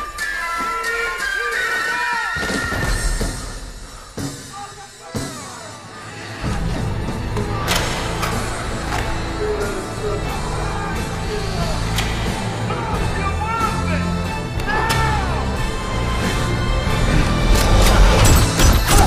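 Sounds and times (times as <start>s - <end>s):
film soundtrack music: 0.0s - 19.0s.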